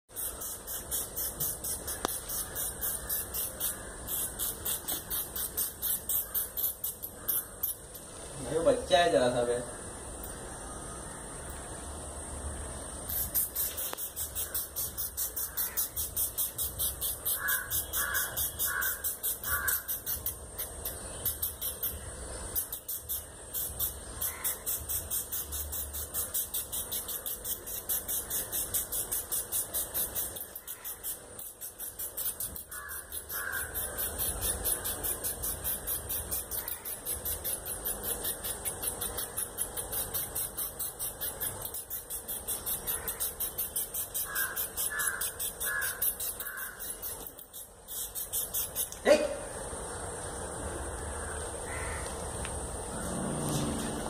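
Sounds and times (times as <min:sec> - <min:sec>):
high-pitched ticking: 0:00.1 - 0:08.8, 0:13.1 - 0:49.0
crows cawing: 0:02.4 - 0:04.2, 0:15.4 - 0:16.0, 0:17.3 - 0:20.0, 0:24.2 - 0:24.6, 0:32.7 - 0:34.1, 0:44.2 - 0:46.9, 0:51.1 - 0:52.2.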